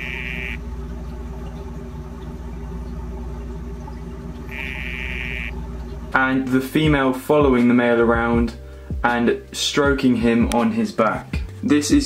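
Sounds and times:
frog buzzing call: 0.0 - 0.7, 4.5 - 5.6
steady low hum: 0.0 - 10.6.

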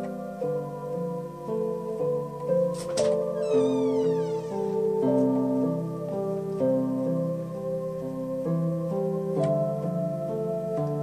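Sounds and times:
electronic keyboard chords: 0.0 - 11.0.

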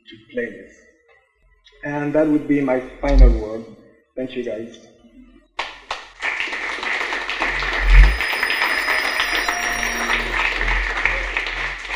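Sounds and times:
audience applauding: 5.6 - 11.9.

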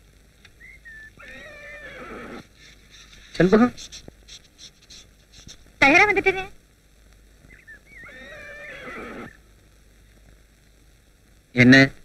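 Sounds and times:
horse whinnying: 0.9 - 2.5, 7.5 - 9.4.

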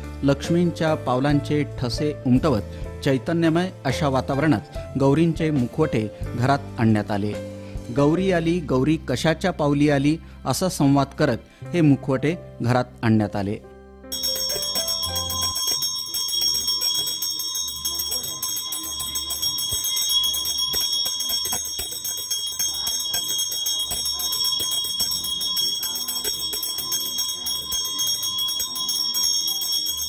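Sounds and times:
handheld bell ringing rapidly: 14.1 - 30.0.

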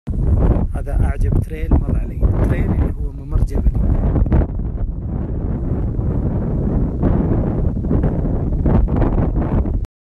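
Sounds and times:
wind buffeting microphone: 0.1 - 9.9.

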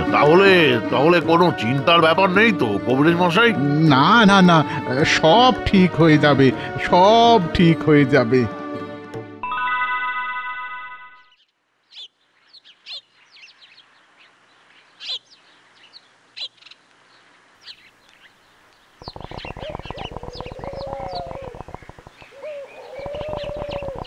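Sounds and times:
lower wavering bird calls: 11.2 - 16.8, 17.6 - 24.0
high bird chirps: 15.0 - 16.8, 19.0 - 24.0
fast rattling bird trill: 19.0 - 24.0.

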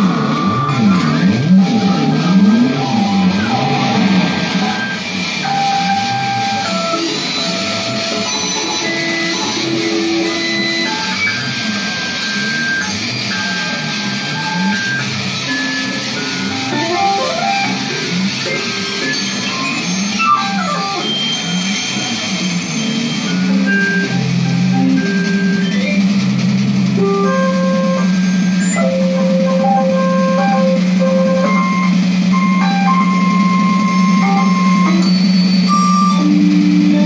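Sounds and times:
low wobbling tone: 0.0 - 5.0.

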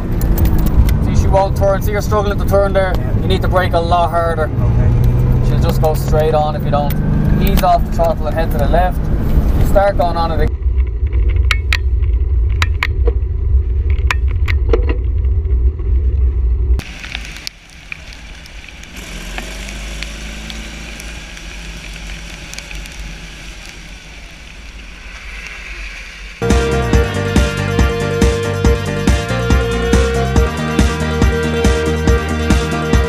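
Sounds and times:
wind rumbling on microphone: 0.0 - 6.0, 6.9 - 26.4
outdoor noise: 0.0 - 33.0
music: 26.4 - 33.0.

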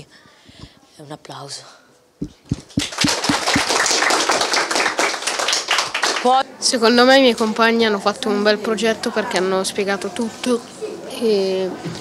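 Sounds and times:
low thumps: 2.2 - 3.7
children applauding: 2.6 - 6.4.

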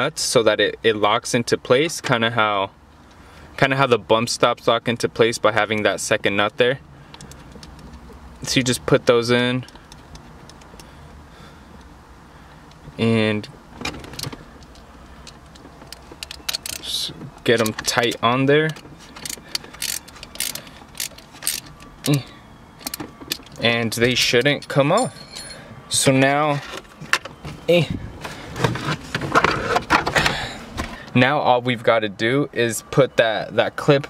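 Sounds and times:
light metallic clicks and taps: 9.6 - 10.9.

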